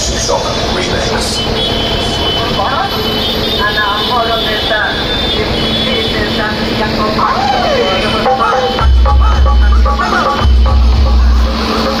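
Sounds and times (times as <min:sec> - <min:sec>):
bass-heavy dj music: 0:07.2 - 0:12.0.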